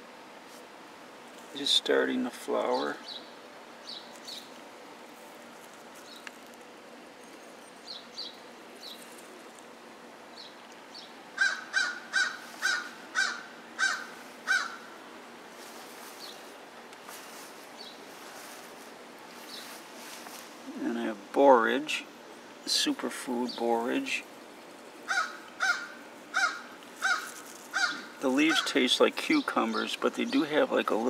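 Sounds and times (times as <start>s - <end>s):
small birds chirping: 2.6s - 15.0s, 15.6s - 31.0s
bird calling: 10.3s - 15.0s, 23.4s - 30.7s.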